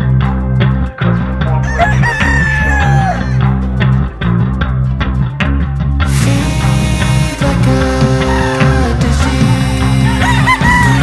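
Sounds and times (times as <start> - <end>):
rock music with bass line: 0.0 - 11.0
rooster crowing: 1.6 - 3.5, 8.2 - 8.9, 10.0 - 11.0.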